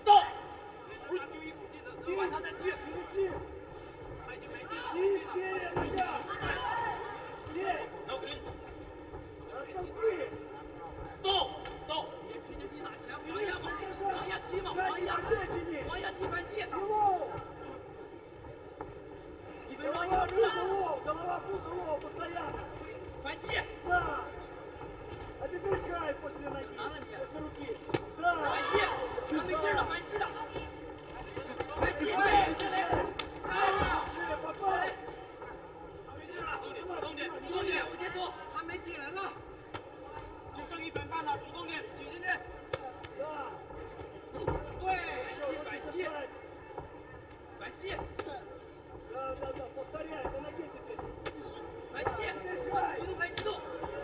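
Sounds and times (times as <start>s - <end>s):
arena crowd noise: 0.0s - 54.0s.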